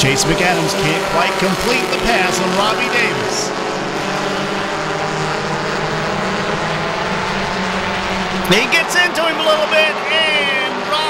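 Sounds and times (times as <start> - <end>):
race truck engines droning: 0.0 - 11.0.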